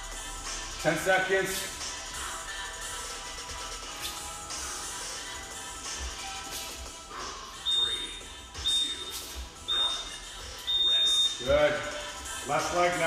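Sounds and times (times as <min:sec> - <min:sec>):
long timer beep: 0:07.6 - 0:11.9
short high timer beeps: 0:07.7 - 0:09.1, 0:10.6 - 0:11.5.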